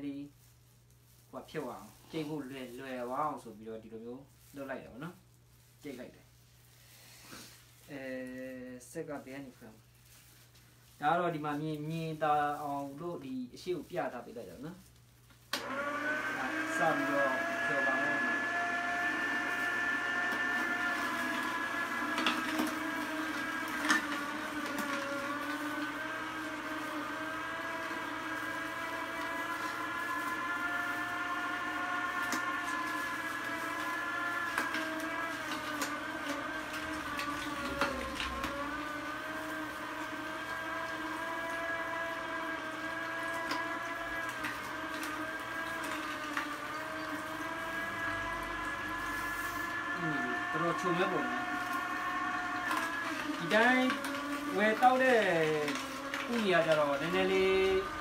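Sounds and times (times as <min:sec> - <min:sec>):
juicer motor whine: 0:01.1 - 0:06.1, 0:06.8 - 0:58.0.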